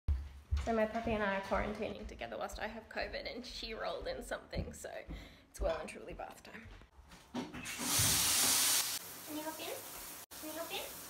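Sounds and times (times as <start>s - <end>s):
bath tap water rushing: 7.6s - 11.0s.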